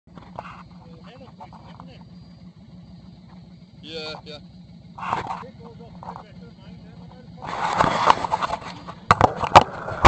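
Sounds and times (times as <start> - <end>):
motorcycle engine idling: 0.1 - 10.0
faint voices talking: 0.6 - 2.9, 3.6 - 7.8.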